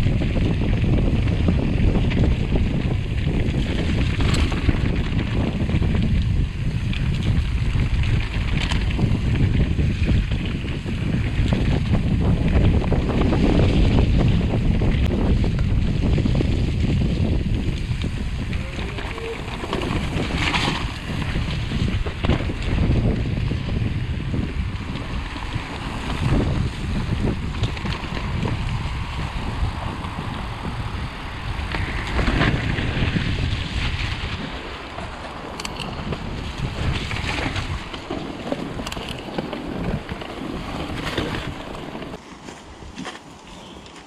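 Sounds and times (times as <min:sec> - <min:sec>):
wind buffeting microphone: 0:00.0 - 0:43.0
bike rattling: 0:00.0 - 0:44.0
tyres rumbling on dirt: 0:00.0 - 0:44.0.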